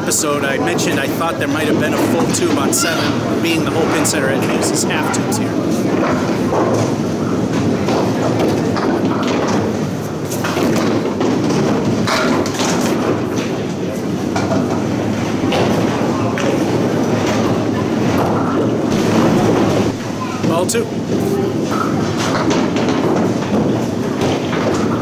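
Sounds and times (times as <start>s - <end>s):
balls rolling on wooden lanes: 0.0s - 25.0s
bowling pins clacking: 0.0s - 25.0s.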